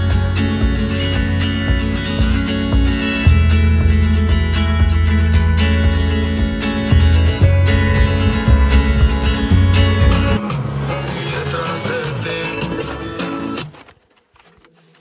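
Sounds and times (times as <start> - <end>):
heavy bass line: 0.0 - 13.6
guitar music: 0.0 - 13.8.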